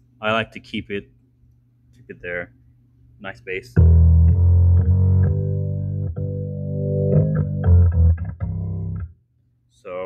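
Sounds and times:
organ chords with heavy bass: 3.8 - 9.2.

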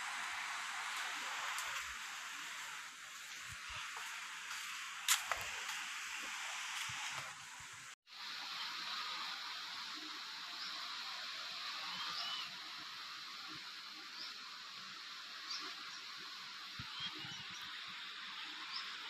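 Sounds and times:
steady high hiss: 0.0 - 19.0
small birds chirping: 11.7 - 12.8, 13.5 - 19.0.

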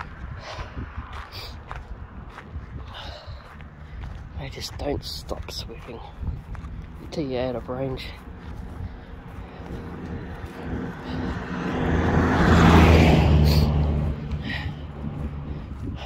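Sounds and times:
pickup truck driving past: 9.8 - 15.5.

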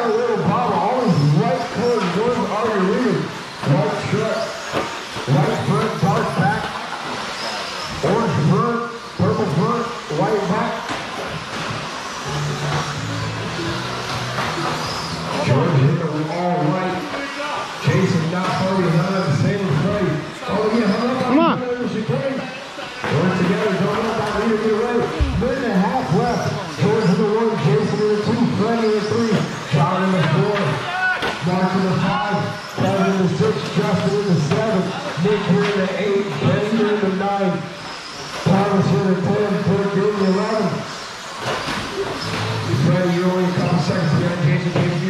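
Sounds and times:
man talking indistinctly: 0.0 - 4.6, 5.2 - 6.7, 8.0 - 10.9, 15.3 - 37.7, 38.4 - 40.9, 42.4 - 45.0
men's voices in echoing hall: 0.0 - 11.4, 15.3 - 45.0.

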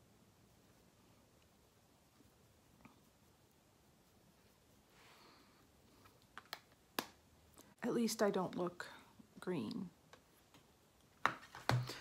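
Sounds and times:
woman speaking: 7.8 - 10.0.

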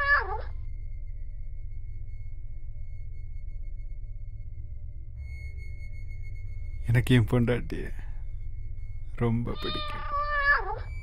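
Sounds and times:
cat meowing: 0.0 - 0.5, 9.5 - 11.0
steady low hum: 0.0 - 11.0.

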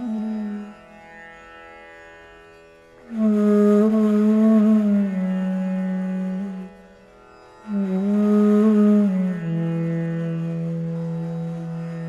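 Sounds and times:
bamboo flute long low note: 0.0 - 1.0, 3.1 - 12.0.

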